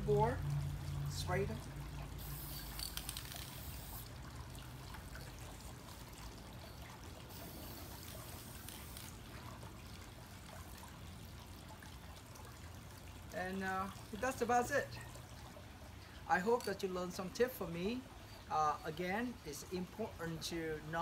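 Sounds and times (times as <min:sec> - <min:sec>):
water trickling: 0:00.0 - 0:21.0
aerosol can spraying: 0:02.2 - 0:04.0, 0:07.4 - 0:09.1.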